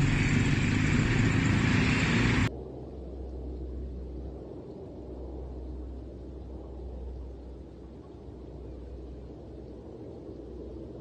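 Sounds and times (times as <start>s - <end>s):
busy street traffic: 0.0s - 2.5s
low rumble: 0.0s - 11.0s.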